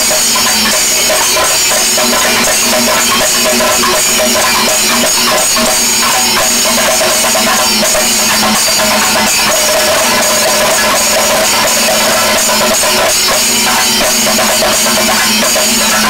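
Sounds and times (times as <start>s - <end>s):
cymbals clashing: 0.0s - 16.0s
hand drums in dense rhythm: 0.0s - 16.0s
held tones: 0.0s - 16.0s.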